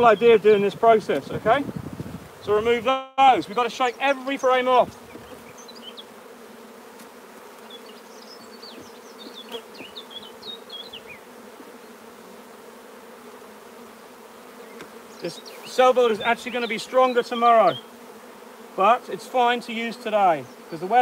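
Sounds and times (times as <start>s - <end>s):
bees buzzing: 0.0s - 21.0s.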